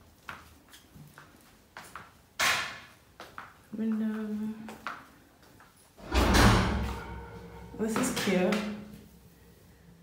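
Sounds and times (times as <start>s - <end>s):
deep rumble: 6.0s - 8.6s.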